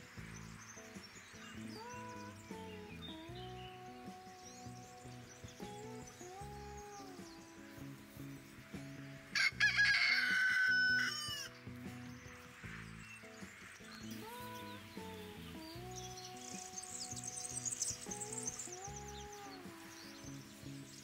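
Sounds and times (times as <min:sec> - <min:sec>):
background music: 0:00.0 - 0:21.0
small birds chirping: 0:00.0 - 0:21.0
rooster crowing: 0:09.3 - 0:11.5.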